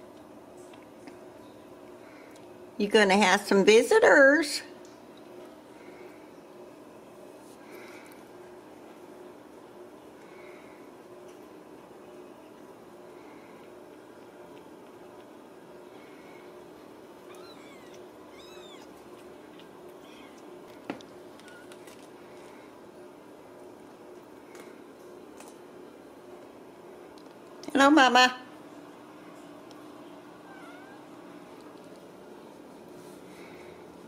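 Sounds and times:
kittens mewing: 17.2 - 19.2, 30.4 - 31.2
cat meowing: 17.3 - 19.0, 20.0 - 20.4, 30.4 - 31.1.

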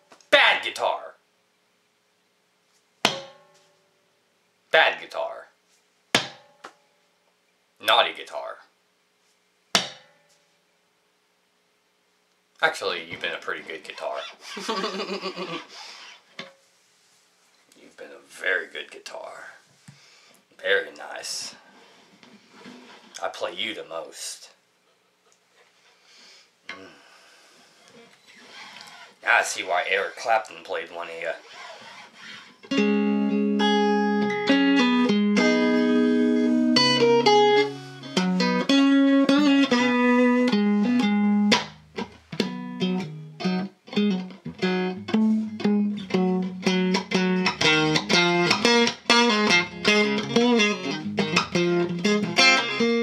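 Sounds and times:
electric guitar strum: 32.7 - 53.0.

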